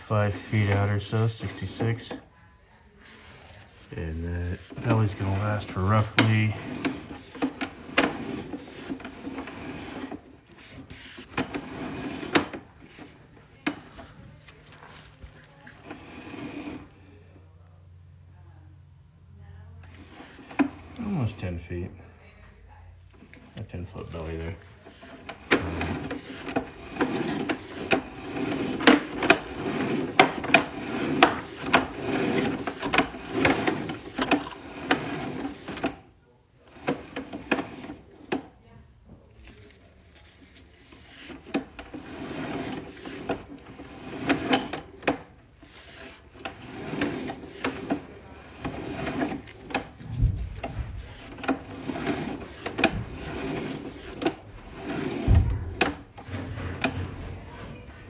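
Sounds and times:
cable rubbing and clattering: 0:00.0 - 0:02.3, 0:03.0 - 0:17.0, 0:19.8 - 0:21.8, 0:23.1 - 0:58.0.

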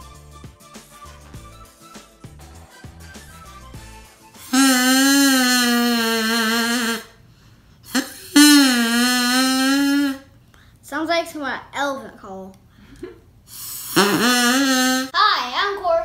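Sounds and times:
soft background music: 0:00.0 - 0:04.6
drinking-straw oboe buzzy notes: 0:02.9 - 0:07.2, 0:07.9 - 0:10.3, 0:13.9 - 0:15.1.

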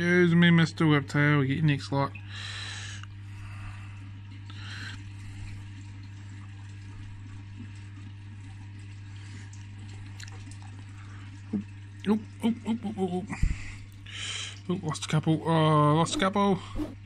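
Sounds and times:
low pump hum: 0:00.8 - 0:17.0
water trickling: 0:04.2 - 0:14.8.

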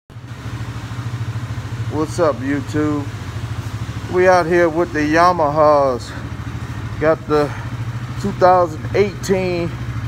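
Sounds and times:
atv engine idling: 0:00.1 - 0:10.0.

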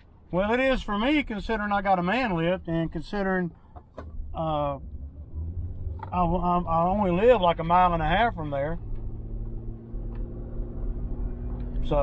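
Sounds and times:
vehicle engine and road rumble: 0:00.0 - 0:12.0.

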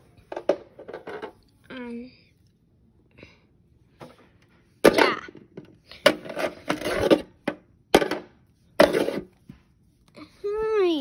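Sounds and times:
plastic toys scraping on wood: 0:06.0 - 0:07.4, 0:08.8 - 0:09.4.

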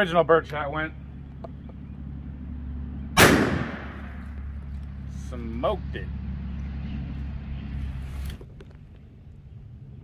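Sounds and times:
shotgun blast: 0:03.2 - 0:04.2.

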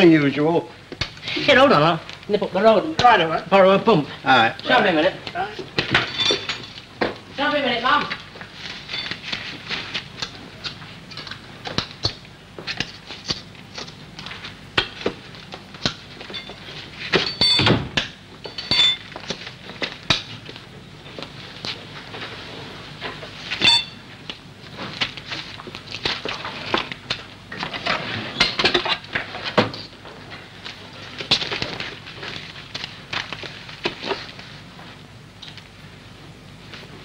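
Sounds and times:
metal and crockery clinking: 0:05.9 - 0:06.8, 0:17.2 - 0:17.8, 0:18.4 - 0:19.1, 0:23.6 - 0:24.0.

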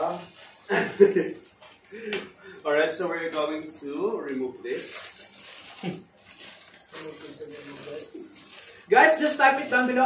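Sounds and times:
man laughing: 0:00.7 - 0:01.4.

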